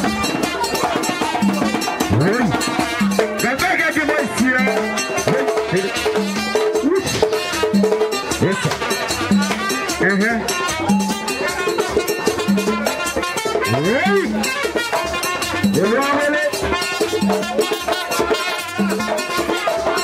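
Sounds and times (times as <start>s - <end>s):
steady drumming and percussion: 0.0s - 20.0s.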